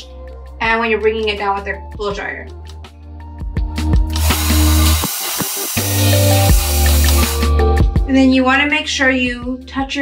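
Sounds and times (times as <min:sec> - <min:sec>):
music with bass beat: 0:03.2 - 0:08.3
hair dryer blowing air: 0:04.1 - 0:07.5.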